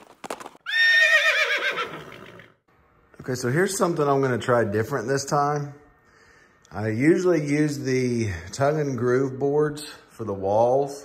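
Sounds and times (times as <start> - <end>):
horse neighing: 0.6 - 2.6.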